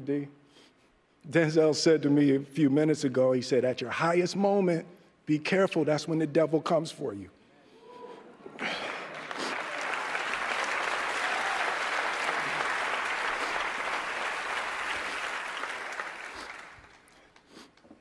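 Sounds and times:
audience applauding: 8.6s - 17.4s.

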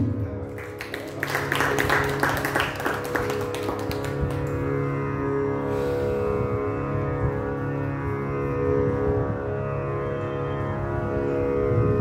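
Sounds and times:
steady drone: 0.0s - 12.0s.

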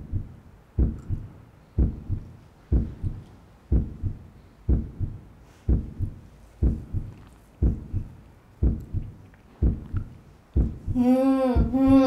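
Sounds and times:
heartbeat double thump: 0.0s - 12.0s.

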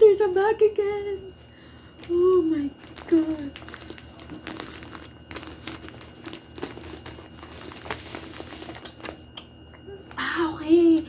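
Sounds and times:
woman's voice: 0.0s - 1.4s, 2.1s - 3.6s, 9.9s - 11.0s
plastic packaging crinkling: 1.3s - 9.4s.

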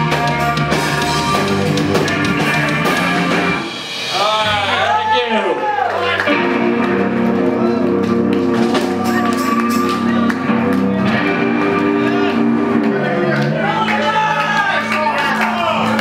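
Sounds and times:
live rock band: 0.0s - 16.0s
guitar notes swooping: 6.0s - 13.8s.

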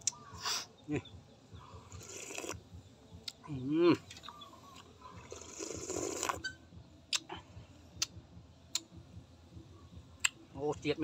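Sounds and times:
soup slurp: 2.0s - 2.6s, 5.2s - 6.4s
man chewing: 4.8s - 6.4s.

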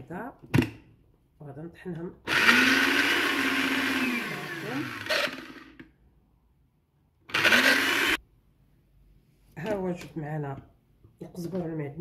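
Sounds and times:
blender motor running: 2.3s - 5.9s, 7.3s - 8.2s.

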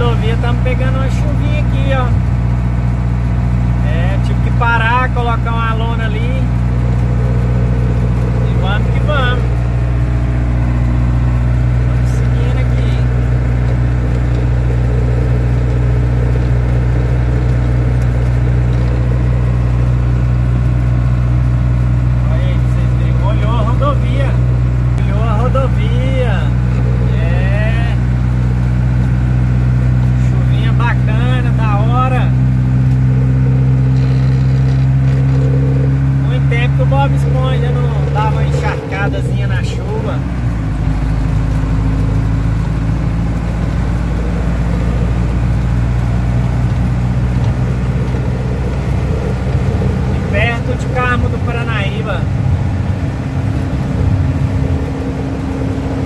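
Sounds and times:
diesel truck engine cruising: 0.0s - 56.0s.

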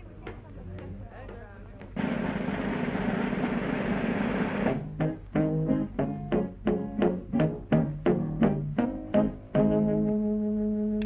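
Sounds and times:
loud rush of noise: 2.0s - 4.8s
orchestra playing clipped notes: 4.6s - 11.0s
quiet cartoon music: 4.7s - 11.0s.

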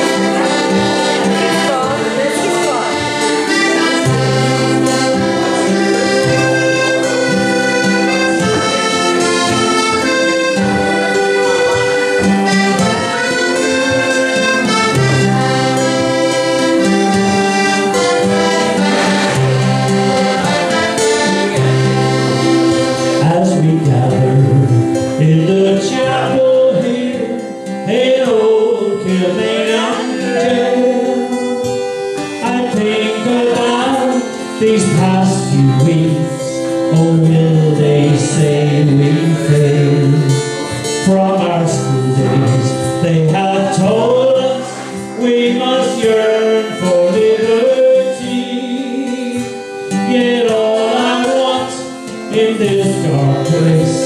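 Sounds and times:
accordions playing: 0.0s - 54.0s
acoustic guitar: 0.0s - 54.0s
voices: 0.0s - 54.0s
bass line: 34.6s - 44.3s.

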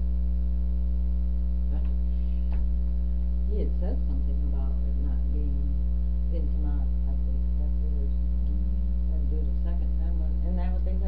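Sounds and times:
loud electrical mains hum: 0.0s - 11.0s.

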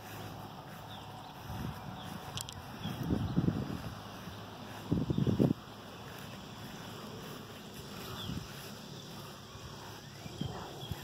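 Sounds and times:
faint bird chirps: 0.0s - 11.0s
footsteps on grass: 0.0s - 11.0s
wind rumble on microphone: 0.0s - 11.0s.

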